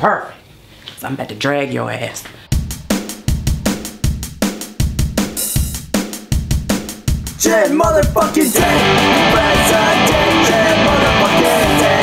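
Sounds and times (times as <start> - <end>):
cymbal crash: 2.5 - 6.0
rock drum beat: 2.5 - 12.0.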